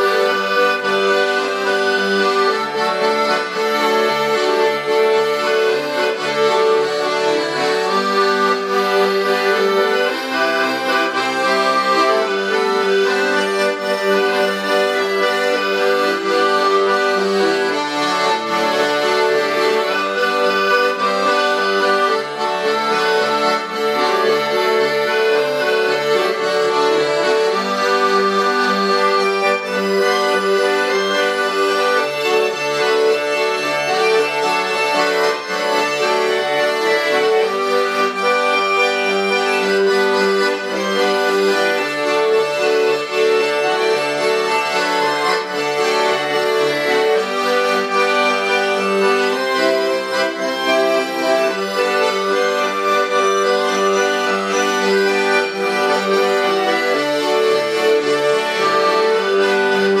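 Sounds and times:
accordion duet: 0:00.0 - 1:00.0.

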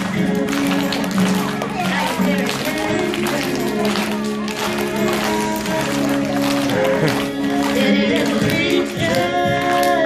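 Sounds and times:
recorded backing music: 0:00.0 - 0:10.0
woman singing into a microphone: 0:07.5 - 0:10.0.

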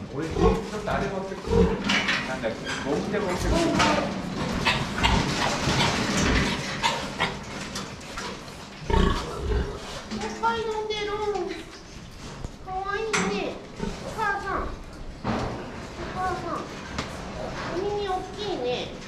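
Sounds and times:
pigs grunting and squealing: 0:00.2 - 0:10.1.

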